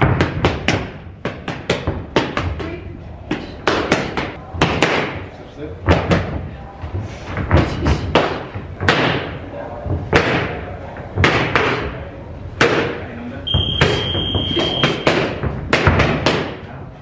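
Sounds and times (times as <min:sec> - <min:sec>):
boxing gloves smacking mitts: 0:00.0 - 0:06.4, 0:07.3 - 0:12.0, 0:13.7 - 0:16.6
high electronic beep: 0:13.5 - 0:15.0.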